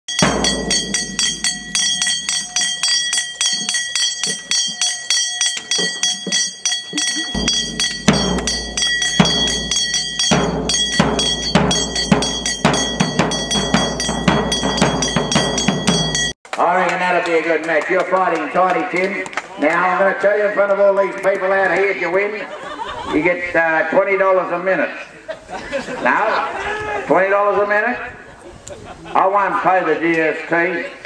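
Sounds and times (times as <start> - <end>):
bass drum booming: 0.1 - 1.9, 7.4 - 16.3
metal bell struck rapidly: 0.1 - 16.4.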